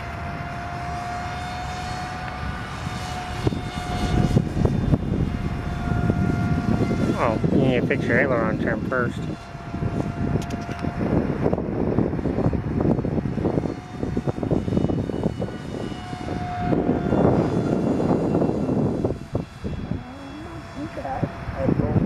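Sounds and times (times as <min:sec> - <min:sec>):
heavy rumbling noise: 0:00.0 - 0:22.0
model airplane motor whine: 0:00.0 - 0:22.0.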